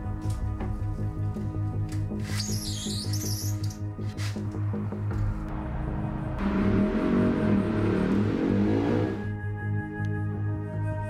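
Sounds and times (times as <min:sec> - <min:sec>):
pulsing low bass note: 0:05.5 - 0:09.4
wash of noise and wavering tones: 0:05.7 - 0:09.3.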